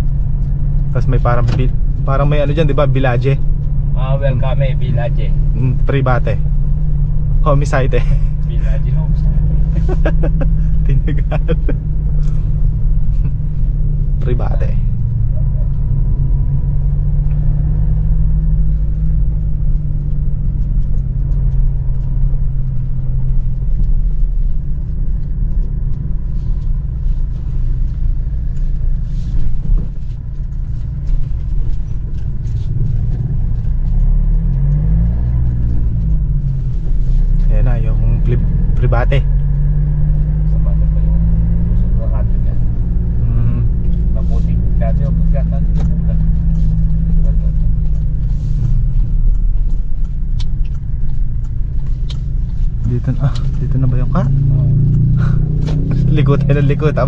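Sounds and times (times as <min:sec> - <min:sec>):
car engine inside cabin: 0:00.0 - 0:57.0.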